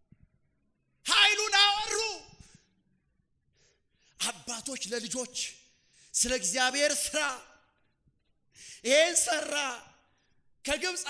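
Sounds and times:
man preaching into a microphone: 1.0 - 2.6, 4.2 - 7.8, 8.6 - 11.0
quick breath: 8.5 - 8.8.

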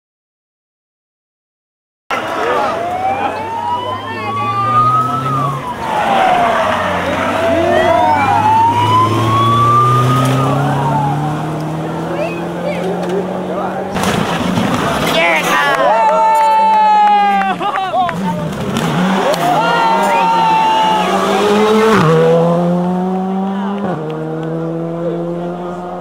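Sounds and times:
car engine: 2.1 - 16.4, 17.2 - 26.0
siren wailing: 2.4 - 12.6, 18.9 - 22.3.

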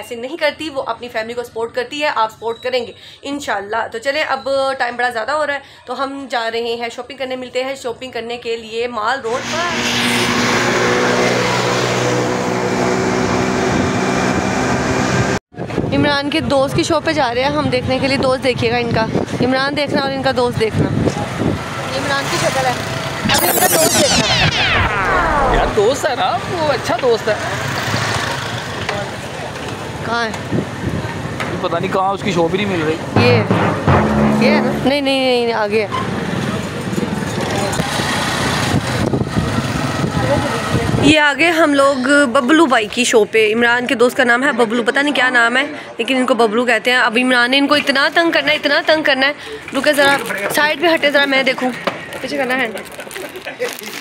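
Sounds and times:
road noise: 9.2 - 15.4, 20.7 - 41.5
vehicle engine hum: 9.3 - 15.4
many people talking: 28.3 - 38.1, 40.1 - 54.0.

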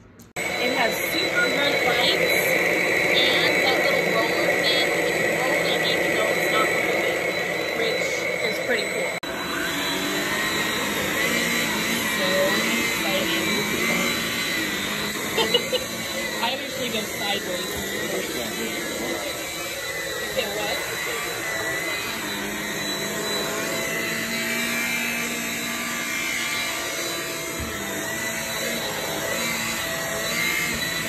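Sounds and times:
cordless vacuum whining: 0.0 - 31.0.

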